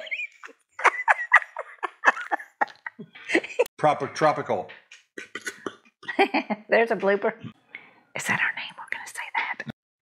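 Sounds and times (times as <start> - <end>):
people laughing: 0.0 - 3.7, 5.4 - 6.6.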